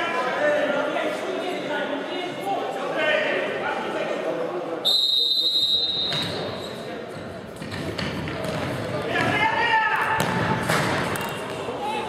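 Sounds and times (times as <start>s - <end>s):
broad ball impact: 10.1s - 11.7s.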